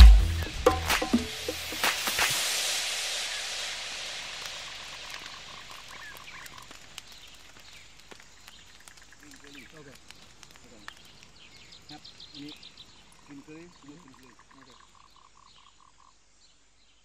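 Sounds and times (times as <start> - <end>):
music with cymbal wash: 0.0 - 6.1
faint frog croaking: 11.9 - 16.4.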